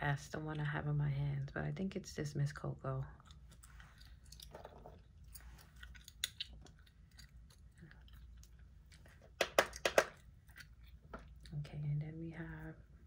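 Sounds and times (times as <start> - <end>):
gum chewing clicks and smacks: 3.2 - 11.6.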